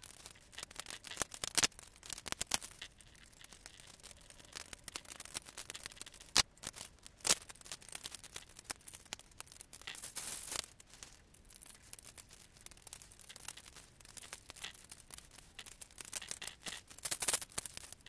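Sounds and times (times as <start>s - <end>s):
plastic scraping rustle: 0.0s - 18.0s.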